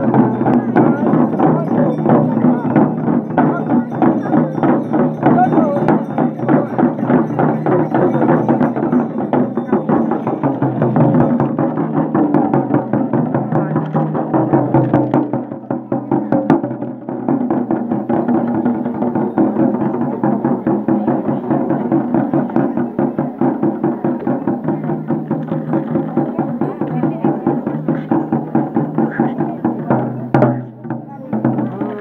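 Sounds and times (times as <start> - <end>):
frame drums beaten with sticks: 0.0 - 32.0.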